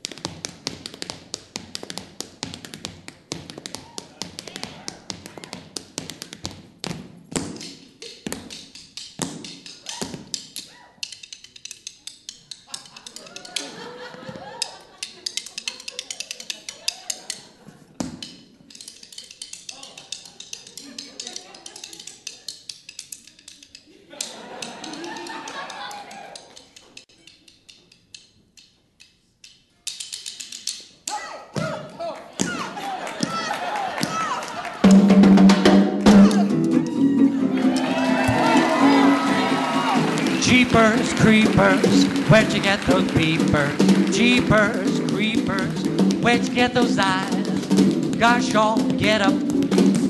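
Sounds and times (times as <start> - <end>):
tap shoes clicking on stage: 0.0 - 27.8, 31.6 - 50.0.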